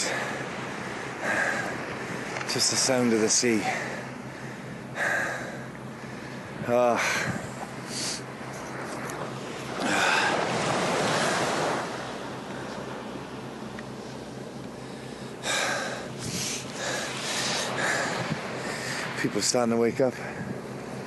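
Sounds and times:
sea waves washing on a beach: 0.0s - 21.0s
wind on the microphone: 6.4s - 7.9s, 16.2s - 16.7s, 17.3s - 18.8s, 20.0s - 20.7s.

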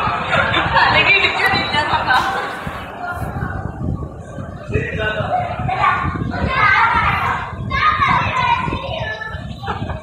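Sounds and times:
children talking and calling out: 0.8s - 10.0s.

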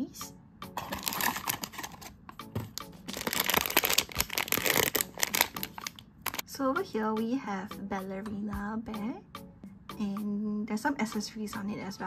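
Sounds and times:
cardboard box being opened: 0.8s - 2.1s
foil bag crinkling: 0.8s - 6.4s.

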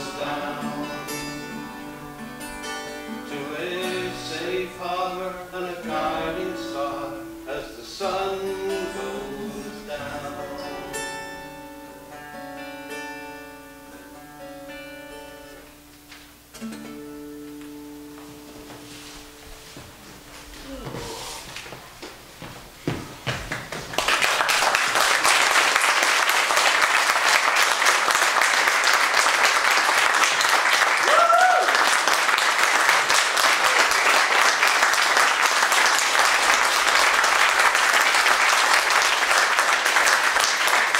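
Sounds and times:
audience applause: 0.0s - 3.0s, 23.3s - 40.9s
acoustic guitars playing: 0.0s - 21.4s.

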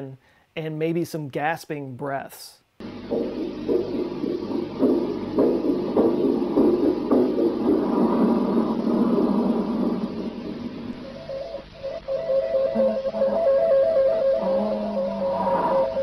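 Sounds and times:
tape hiss: 0.0s - 16.0s
muffled rhythmic thumping: 2.8s - 16.0s
steady tone: 2.8s - 16.0s.

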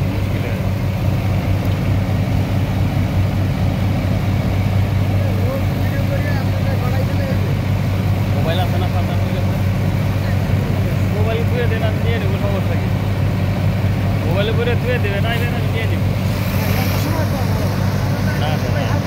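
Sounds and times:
diesel pump engine humming: 0.0s - 19.0s.

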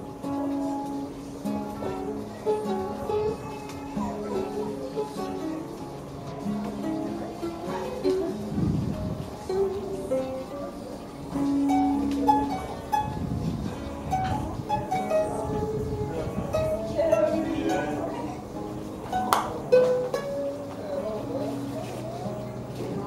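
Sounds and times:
acoustic guitar: 0.0s - 23.0s
ukulele: 0.0s - 23.0s.

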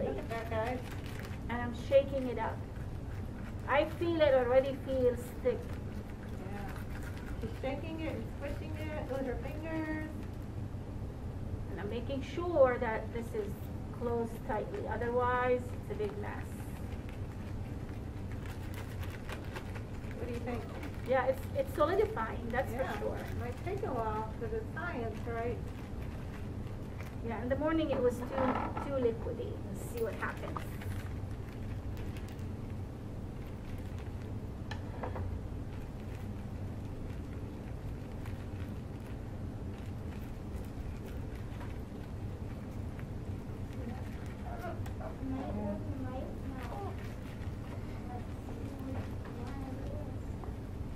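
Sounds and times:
plastic bag crinkling: 0.0s - 10.5s, 15.5s - 34.8s, 35.5s - 49.8s
low room hum: 0.0s - 50.9s.

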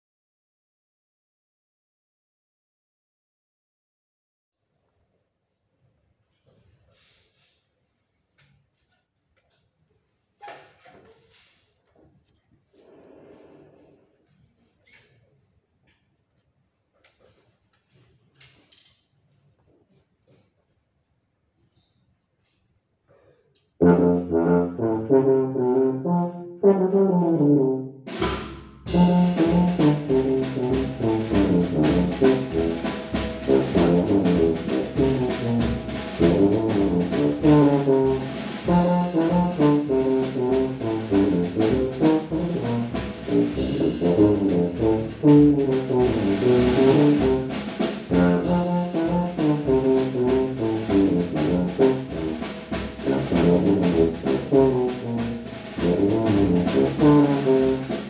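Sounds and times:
tuba playing: 23.8s - 28.2s, 28.8s - 58.0s
drum kit with cymbals: 28.1s - 58.0s.

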